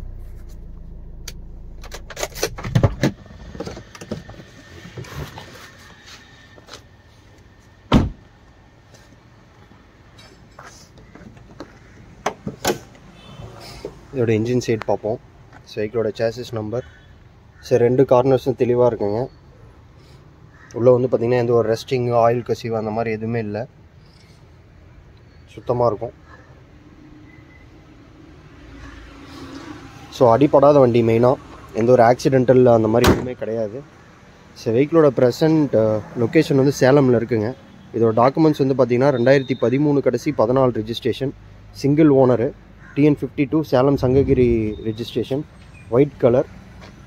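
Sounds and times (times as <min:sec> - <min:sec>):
diesel engine idling: 0:00.0 - 0:04.0
car door thump: 0:00.0 - 0:04.2, 0:07.9 - 0:08.2, 0:33.0 - 0:33.4.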